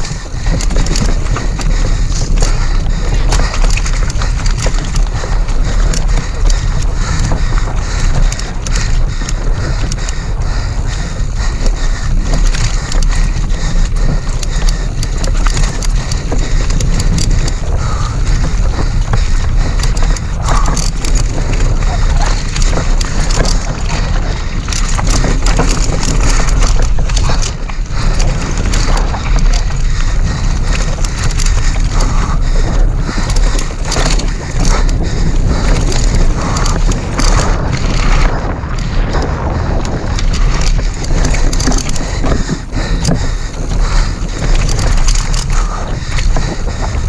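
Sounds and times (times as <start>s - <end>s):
bike clicks knocks and rattles: 0.0s - 47.0s
wind rumble on microphone: 0.0s - 47.0s.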